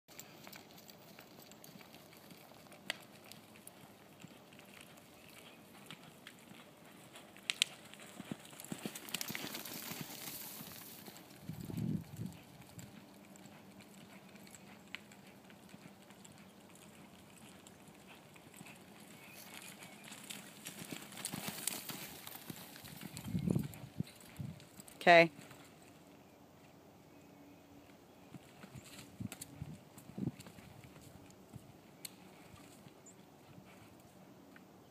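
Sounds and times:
horse hooves thudding on sand: 0.2s - 25.8s, 28.3s - 34.2s.

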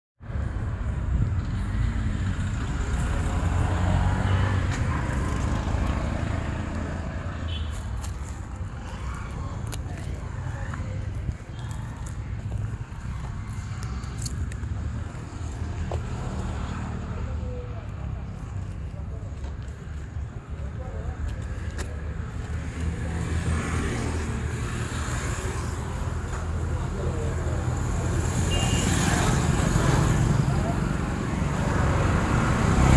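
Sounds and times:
indistinct voices: 3.0s - 32.9s.

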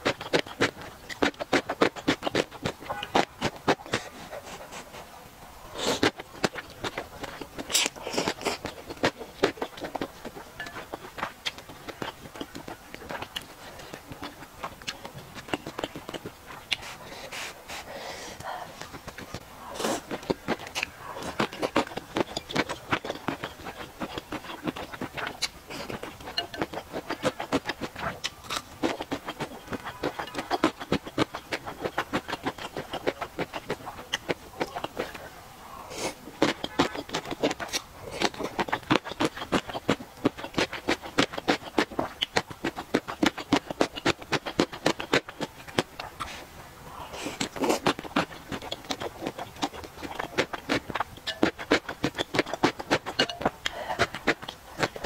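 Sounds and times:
wet chewing crunches: 0.0s - 5.1s, 5.7s - 55.0s
mouth clicks: 47.0s - 55.0s.

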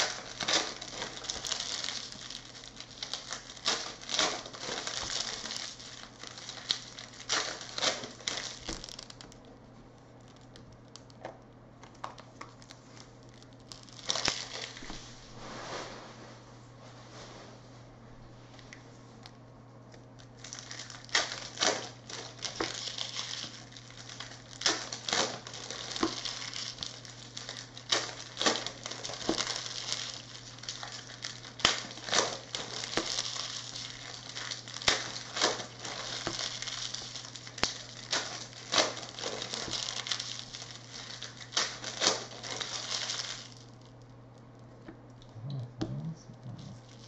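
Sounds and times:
cards rustling and crinkling: 0.0s - 9.4s, 20.2s - 43.9s.

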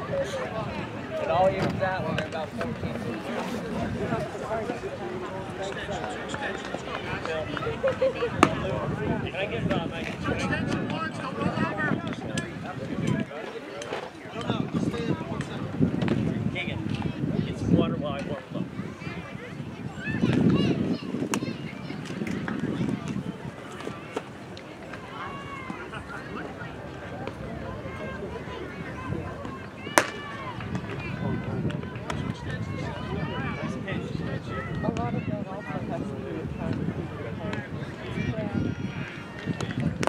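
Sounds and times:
spectators chattering: 0.0s - 40.0s.

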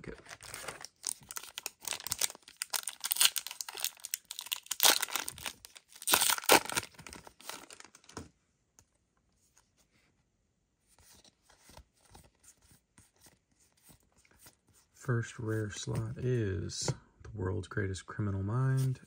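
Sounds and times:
foil wrapper ripping: 0.4s - 7.0s
foil wrapper crinkling: 0.4s - 8.0s.

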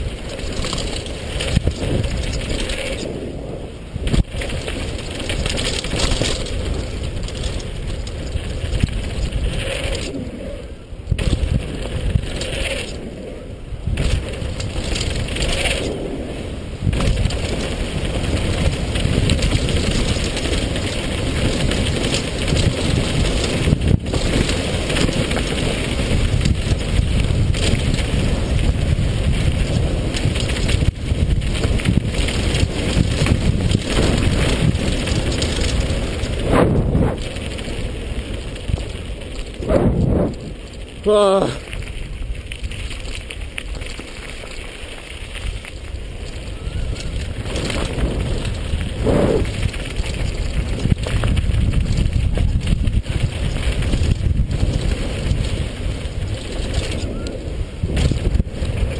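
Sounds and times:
bike rattling: 0.0s - 58.9s
wind buffeting microphone: 0.0s - 58.9s.

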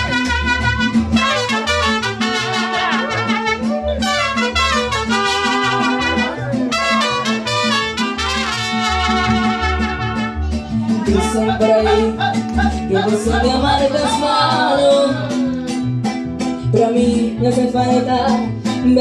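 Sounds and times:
trumpet melody: 0.0s - 10.5s, 11.1s - 12.2s
strummed guitars: 0.0s - 19.0s.

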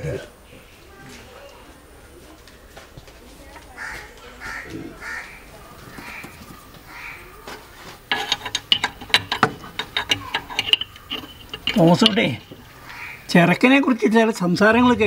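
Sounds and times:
crows cawing: 3.7s - 8.0s, 10.8s - 13.6s
metallic tool clicks: 8.1s - 12.6s.

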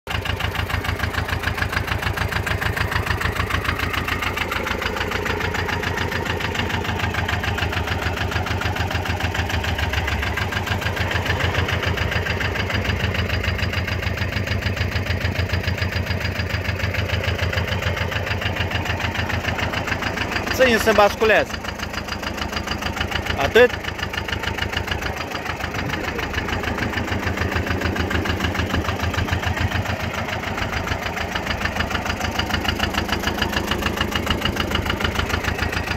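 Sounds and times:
farm machine engine running: 0.1s - 35.9s.

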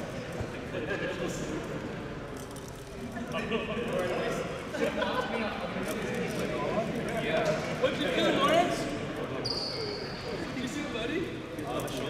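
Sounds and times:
people talking: 3.1s - 9.6s.

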